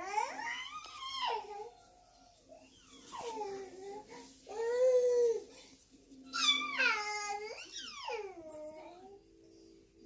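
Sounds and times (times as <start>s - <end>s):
baby squealing: 6.3s - 8.3s.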